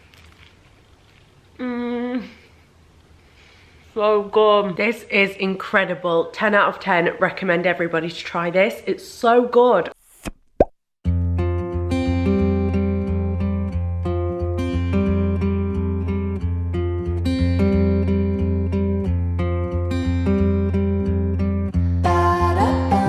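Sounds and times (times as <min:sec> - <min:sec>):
pop sound effect: 0:10.2 - 0:10.8.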